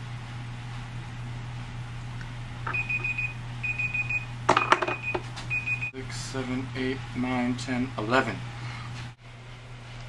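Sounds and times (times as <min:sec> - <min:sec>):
timer alarm rapid beeps: 0:02.7 - 0:04.3, 0:04.9 - 0:05.9.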